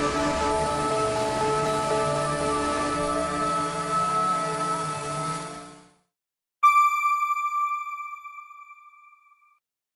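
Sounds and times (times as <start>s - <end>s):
high bell-like chime: 6.6s - 9.6s.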